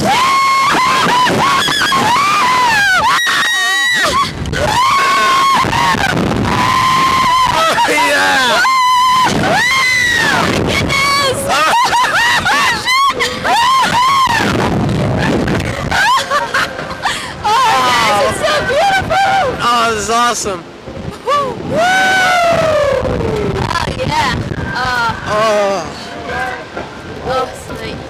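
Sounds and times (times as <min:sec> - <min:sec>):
riders screaming and whooping: 0:00.0 - 0:19.8, 0:21.1 - 0:26.0.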